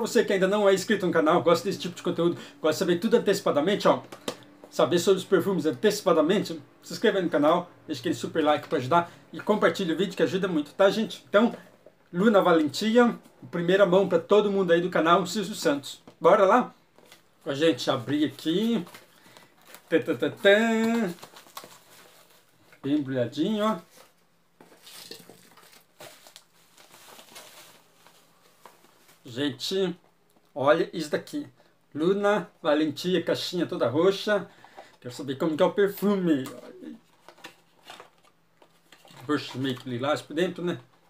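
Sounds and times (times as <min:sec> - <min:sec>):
bubble wrap crinkling: 0:18.5 - 0:22.9, 0:23.7 - 0:29.3.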